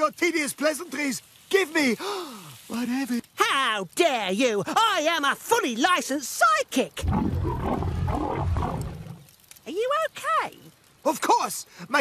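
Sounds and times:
cartoon stomach rumble: 0:07.0 - 0:09.3.

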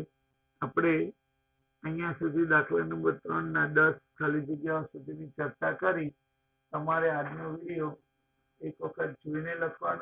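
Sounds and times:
man speaking: 0:00.0 - 0:01.2, 0:01.8 - 0:08.0, 0:08.6 - 0:10.0
faint electrical hum: 0:00.0 - 0:10.0.

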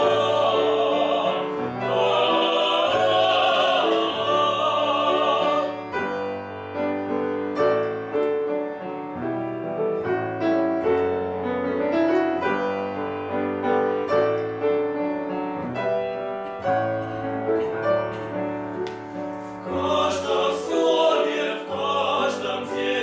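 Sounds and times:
grand piano playing: 0:00.0 - 0:23.0.

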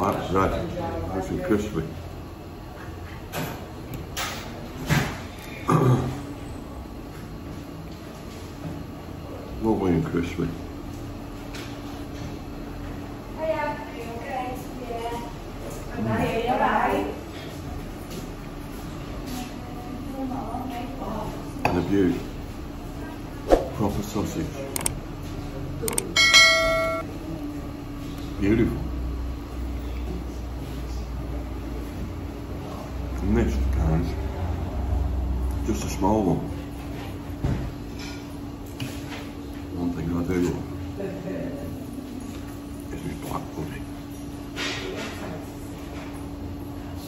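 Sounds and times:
bright bell ding: 0:26.1 - 0:27.0.

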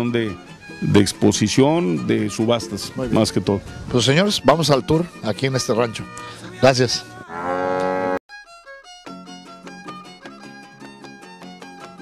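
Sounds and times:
fiddle music: 0:00.0 - 0:12.0
cow mooing: 0:07.2 - 0:08.2.

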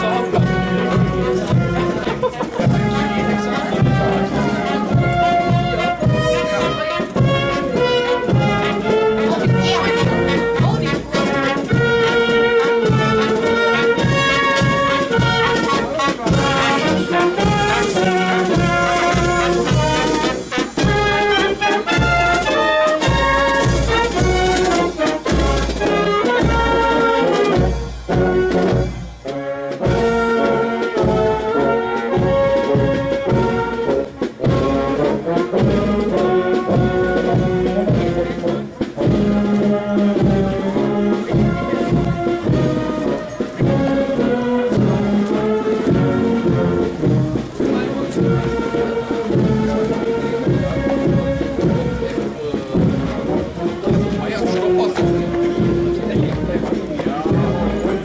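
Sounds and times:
brass band music: 0:00.0 - 0:58.0.

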